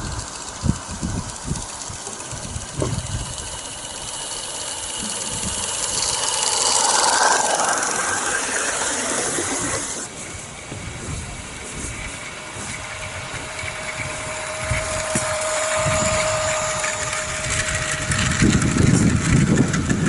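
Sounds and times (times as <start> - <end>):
miniature train humming on track: 0.0 - 20.0.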